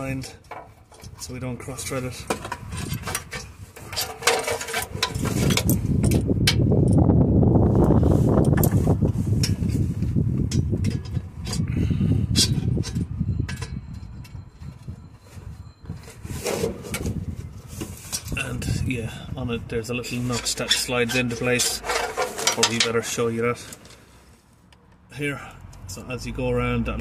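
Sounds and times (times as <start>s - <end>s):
metal parts clicking and scraping: 0.0s - 7.1s, 10.4s - 14.9s, 20.1s - 24.0s.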